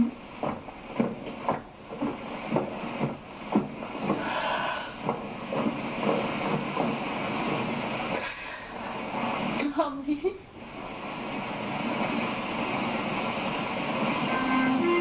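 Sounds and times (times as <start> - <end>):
footsteps on wooden boards: 0.0 - 8.3
steady background noise: 0.0 - 15.0.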